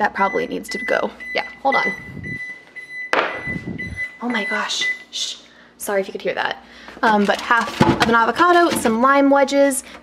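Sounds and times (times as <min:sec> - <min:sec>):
refrigerator alarm beeping: 0:00.0 - 0:05.2.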